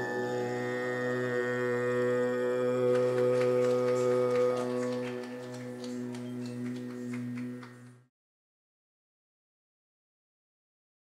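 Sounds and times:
held drone note: 0.0 - 8.1.

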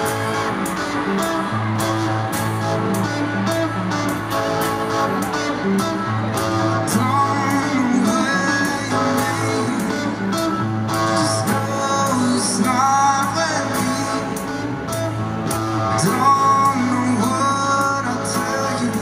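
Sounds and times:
man singing into microphone: 6.6 - 14.9, 15.8 - 19.0.

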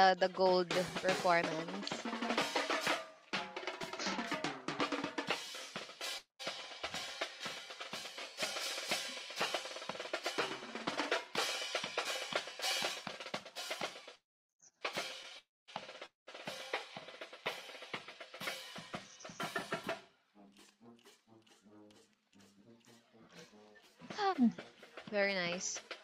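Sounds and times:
bass drums: 0.0 - 14.0
snare drums: 0.0 - 14.2, 14.9 - 26.0.

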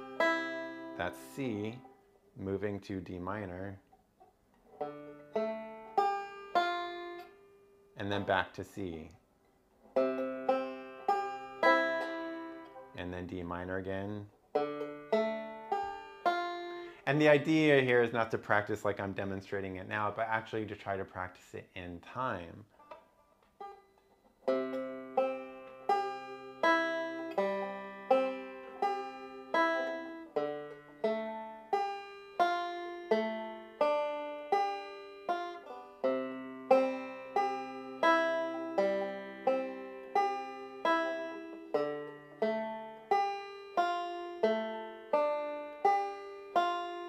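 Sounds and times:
banjo picking rolls: 0.0 - 47.0.

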